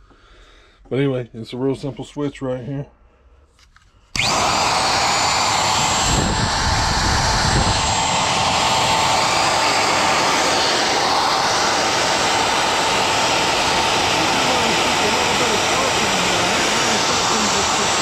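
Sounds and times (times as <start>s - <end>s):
router motor whining: 4.2s - 18.0s.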